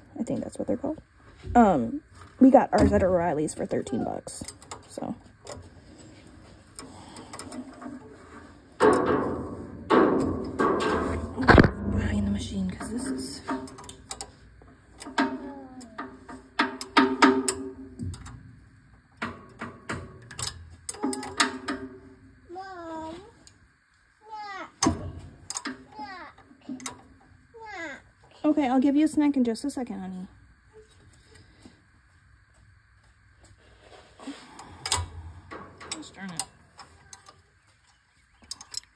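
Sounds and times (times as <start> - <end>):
child's voice: 3.7 - 4.2, 15.3 - 16.2, 21.0 - 21.4, 22.5 - 23.4, 24.2 - 24.8, 25.9 - 26.8, 27.6 - 28.1.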